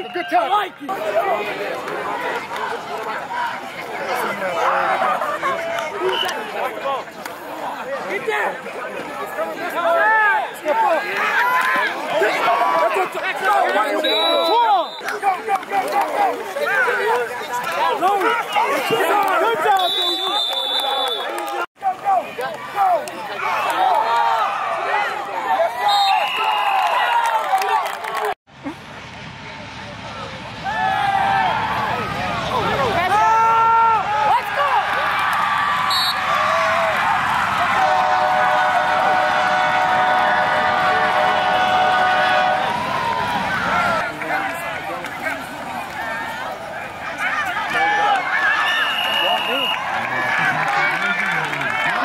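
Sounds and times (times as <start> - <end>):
crowd cheering and yelling: 0.0 - 52.0.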